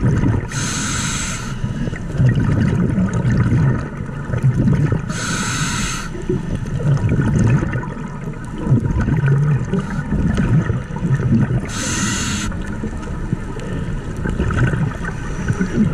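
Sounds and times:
underwater bubbling of exhaled air: 0:00.0 - 0:15.9
regulator inhalation hiss: 0:00.5 - 0:01.9, 0:05.1 - 0:06.3, 0:11.7 - 0:12.6.

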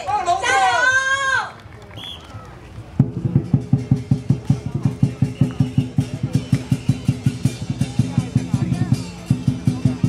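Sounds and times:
drum beaten in fast rhythm: 0:02.9 - 0:10.0.

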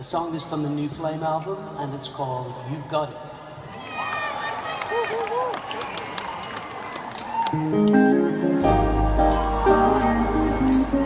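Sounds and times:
people whooping: 0:03.7 - 0:07.8, 0:09.0 - 0:11.0
audience cheering and clapping: 0:03.7 - 0:11.0.

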